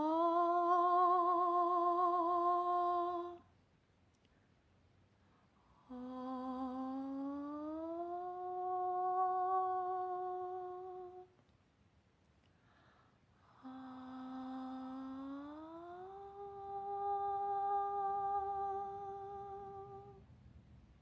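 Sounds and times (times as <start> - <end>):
person humming: 0.0 - 3.5, 5.8 - 11.3, 13.5 - 20.2.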